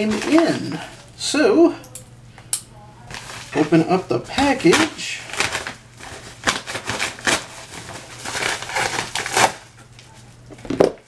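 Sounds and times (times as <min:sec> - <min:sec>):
wrapping rustling and crinkling: 0:00.0 - 0:01.2, 0:03.0 - 0:11.0.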